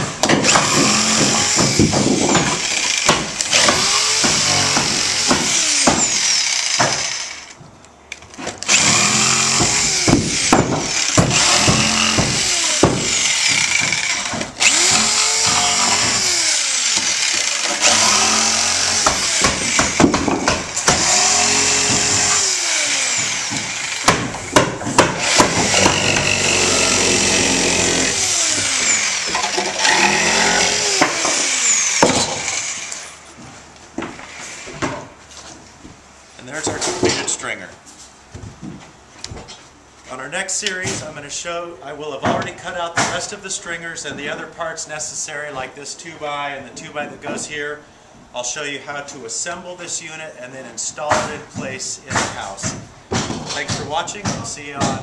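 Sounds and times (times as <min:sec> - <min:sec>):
jigsaw cutting wood: 0:00.0 - 0:07.6, 0:08.6 - 0:33.2.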